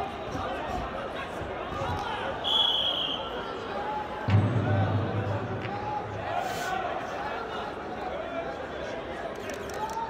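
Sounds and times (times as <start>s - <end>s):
crowd chatter: 0.0s - 10.0s
referee's whistle blast: 2.4s - 3.4s.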